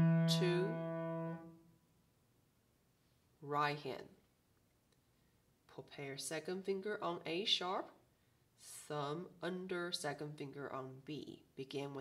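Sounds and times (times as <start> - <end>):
held piano note: 0.0 - 1.4.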